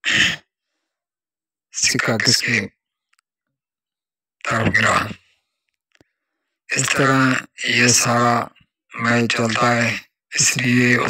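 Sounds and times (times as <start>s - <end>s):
man speaking: 1.7s - 2.7s, 4.4s - 5.3s, 6.7s - 11.0s.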